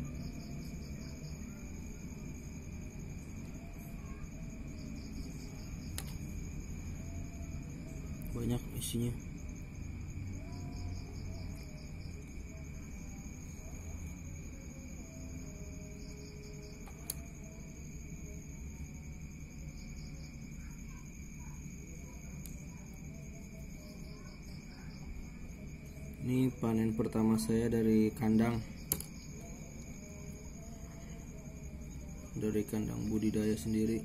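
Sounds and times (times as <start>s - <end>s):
crickets chirping: 0.0s - 34.0s.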